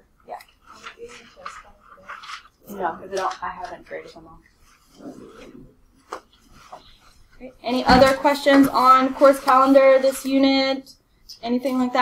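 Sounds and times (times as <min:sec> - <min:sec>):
faint rubbing or scraping: 0:00.5 - 0:03.0, 0:04.0 - 0:07.5.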